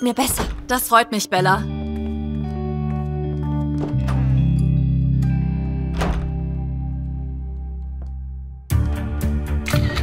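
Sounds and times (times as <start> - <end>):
background music low sustained notes: 0.0 - 10.0
door lever handle thunk: 5.9 - 6.4.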